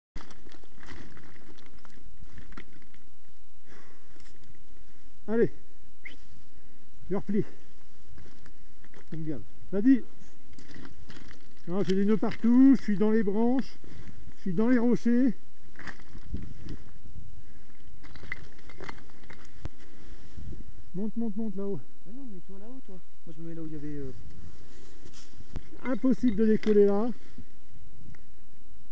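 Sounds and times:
gear clicking and rustling: 0.2 - 3.1, 10.4 - 14.2, 17.7 - 19.8
stones shifting underfoot: 0.2 - 3.1, 7.8 - 9.4, 10.4 - 14.6, 15.6 - 17.0, 17.6 - 20.0, 24.2 - 27.2
wind rumble on microphone: 8.0 - 21.3.

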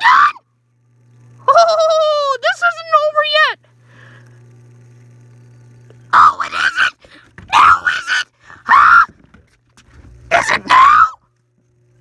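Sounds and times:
person screaming: 6.1 - 9.1, 10.3 - 11.2.

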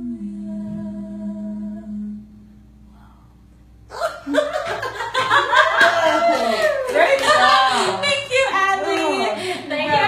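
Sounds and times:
people laughing: 3.9 - 9.8
people talking: 5.4 - 10.0.

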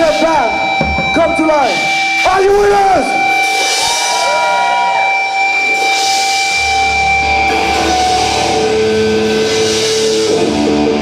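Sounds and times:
cymbal wash: 0.0 - 11.0
electric guitars long high notes: 0.0 - 11.0.

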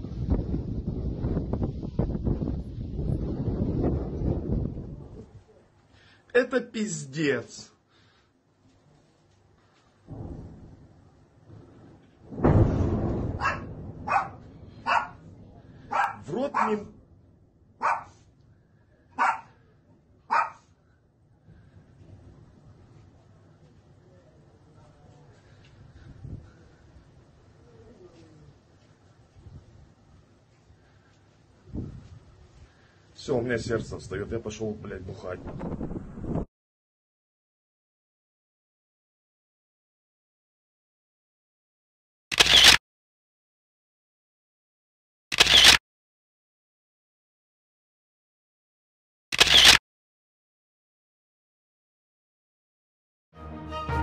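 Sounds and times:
dog barking: 13.4 - 15.2, 15.9 - 16.9, 17.8 - 18.2, 19.2 - 19.6, 20.3 - 20.7
short edit clicks: 42.3 - 42.8, 45.3 - 45.8, 49.3 - 49.8.

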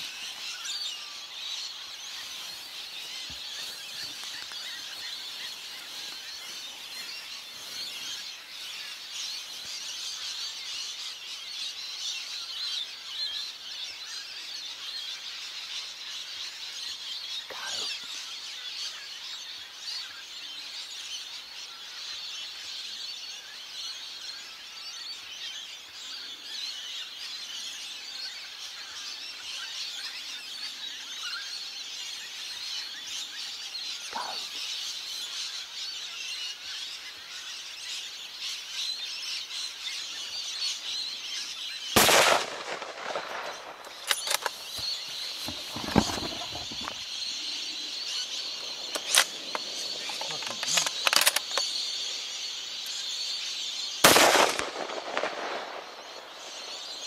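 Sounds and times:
birds calling: 0.0 - 57.0
rifle shot: 42.0 - 44.8, 54.0 - 56.8.

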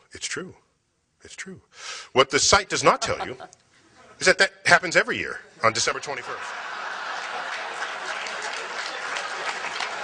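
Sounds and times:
audience applauding: 6.1 - 10.0.

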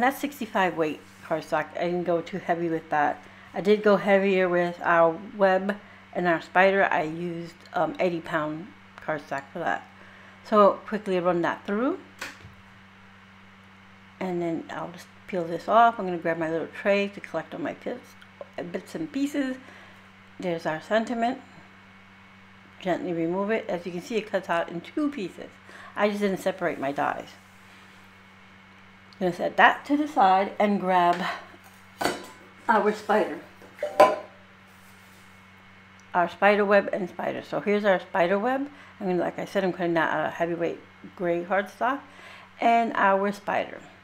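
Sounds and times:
woman speaking: 0.0 - 9.9, 10.5 - 12.1, 14.2 - 19.6, 20.4 - 21.6, 22.8 - 27.4, 29.2 - 31.6, 32.6 - 33.6, 36.1 - 44.0
steady low hum: 0.0 - 44.0.

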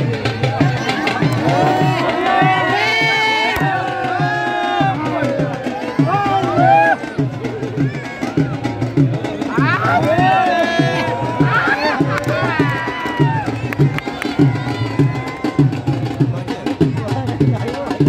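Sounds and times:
voices calling out: 0.0 - 17.8
dhol drum beating: 0.0 - 18.0.

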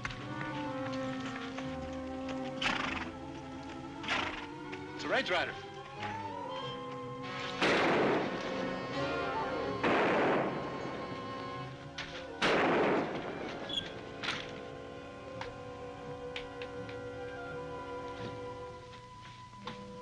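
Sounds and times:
background music: 0.0 - 20.0
loud echoing gunshots: 7.6 - 11.6, 12.3 - 13.6
faint cracks: 9.8 - 14.7.

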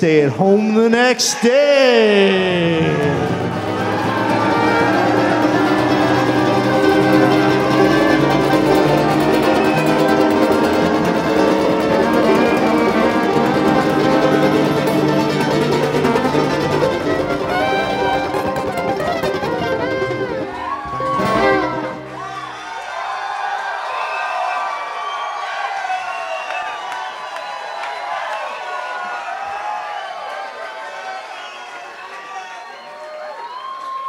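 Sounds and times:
upright bass: 2.0 - 22.4
fiddle: 2.3 - 22.5
mandolin: 2.5 - 22.6
acoustic guitar: 2.6 - 22.5
banjo: 2.8 - 22.5.

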